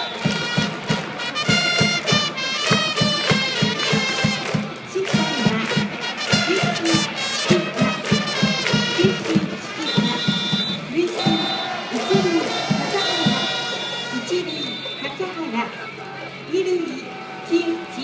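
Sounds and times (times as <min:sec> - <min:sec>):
crowd singing and chanting: 0:00.0 - 0:03.4, 0:04.0 - 0:18.0
trumpets playing: 0:00.0 - 0:15.3.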